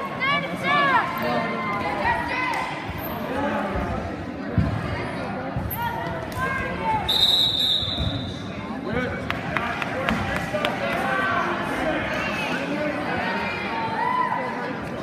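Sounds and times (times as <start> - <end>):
referee's whistle: 7.0 - 8.4.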